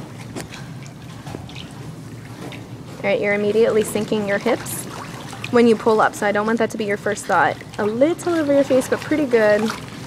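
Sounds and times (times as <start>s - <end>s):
steady low hum: 0.0s - 10.0s
water splashing and dripping: 0.0s - 10.0s.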